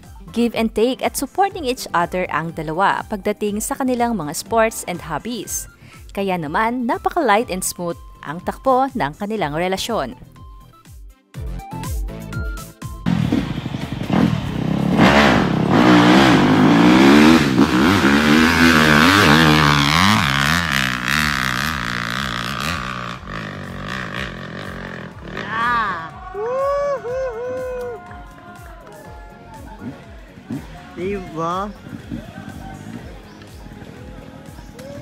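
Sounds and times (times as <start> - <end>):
dirt bike engine revving: 13.1 - 26.2, 29.8 - 35.0.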